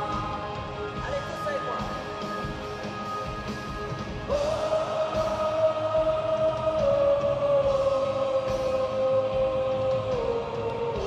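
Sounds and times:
live band through pa: 0.0s - 11.0s.

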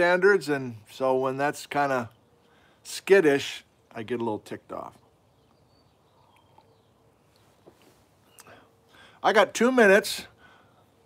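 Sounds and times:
faint outdoor ambience: 0.0s - 11.0s
faint bird chirps: 5.2s - 8.7s.

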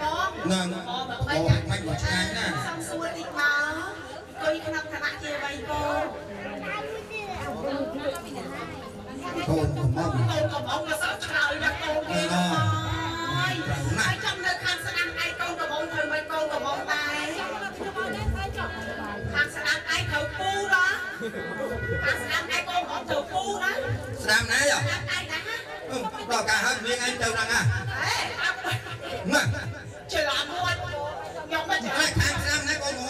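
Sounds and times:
chatter of voices: 0.0s - 33.0s.

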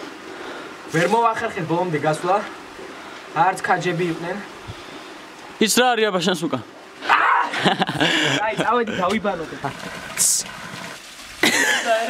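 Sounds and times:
young man talking: 8.0s - 10.5s.

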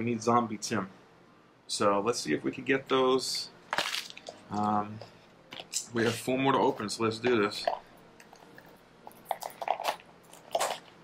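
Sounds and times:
package rustling: 3.7s - 4.8s
plastic package crinkling: 3.7s - 4.8s.

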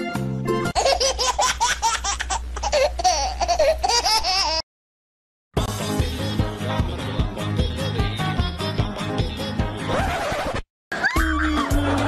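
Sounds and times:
high-pitched laughter: 9.9s - 12.0s.

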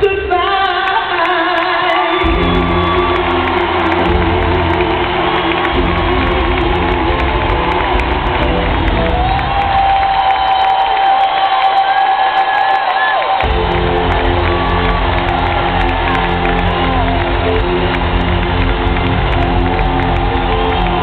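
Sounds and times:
crowd cheering and whooping: 1.2s - 21.0s
live band playing: 2.2s - 10.4s, 13.4s - 21.0s.

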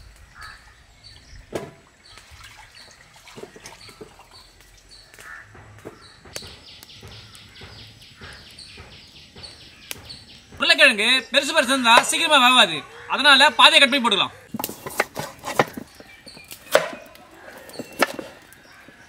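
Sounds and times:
bird chirping: 0.0s - 19.0s
potatoes knocking on metal pot: 5.2s - 12.4s, 14.5s - 19.0s.

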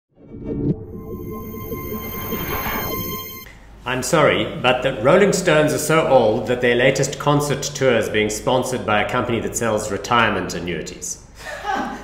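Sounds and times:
low rumble: 0.1s - 3.5s
whoosh: 0.1s - 3.5s
intro music sting: 0.2s - 3.5s.

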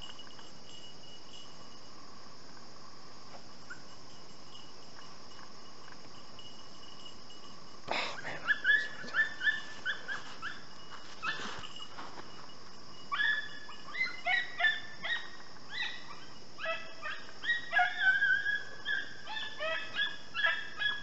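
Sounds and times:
crickets trilling: 0.0s - 21.0s
hounds yelping: 8.4s - 12.2s, 13.0s - 21.0s.

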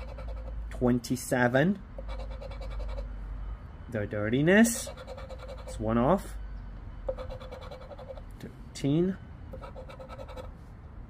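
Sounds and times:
scratching lottery ticket: 0.0s - 0.6s, 2.0s - 3.1s, 4.6s - 5.8s, 7.1s - 8.3s, 9.6s - 10.5s
steady low hum: 0.0s - 11.0s.

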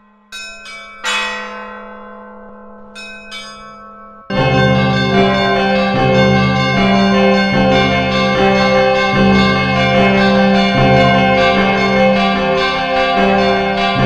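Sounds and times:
church bells ringing: 0.0s - 14.0s
loud music with deep bass: 4.3s - 14.0s.

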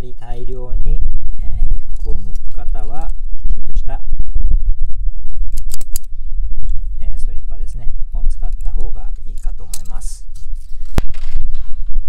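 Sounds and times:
steady low rumble: 0.0s - 12.0s
cable stripper clicks: 5.5s - 6.1s.

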